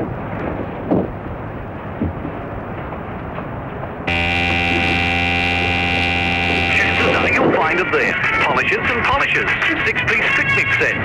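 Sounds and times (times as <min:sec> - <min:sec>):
alarm clock buzzer: 0:04.1 - 0:07.5.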